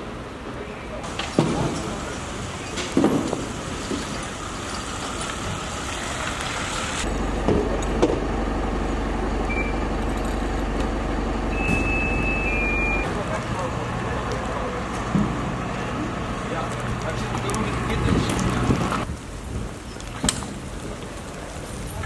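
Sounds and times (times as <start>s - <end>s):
street noise: 0.0s - 22.0s
diesel engine idling: 1.0s - 19.1s
short high tones: 11.5s - 13.1s.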